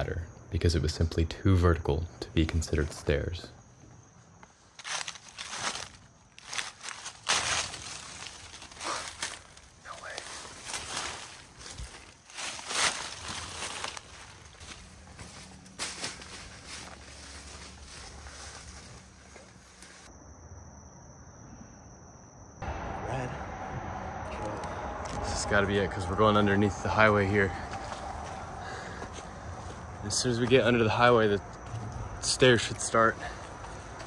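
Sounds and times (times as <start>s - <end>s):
footsteps on dry leaves: 4.5s - 20.1s, 26.0s - 31.0s, 33.0s - 34.0s
low hum: 7.6s - 32.6s.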